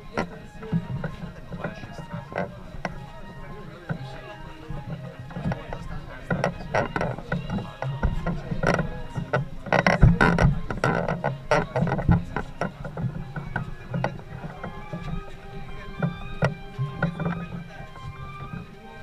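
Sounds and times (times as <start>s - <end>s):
crowd talking: 0.0s - 19.0s
faint music: 0.0s - 19.0s
wooden poles creaking and knocking: 0.0s - 19.0s.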